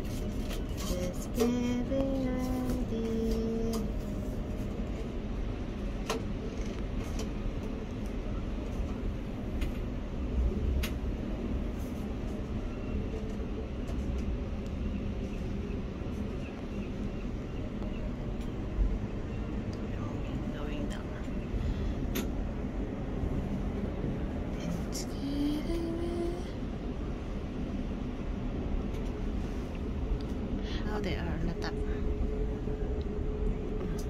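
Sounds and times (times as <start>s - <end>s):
low gondola rumble: 0.0s - 34.0s.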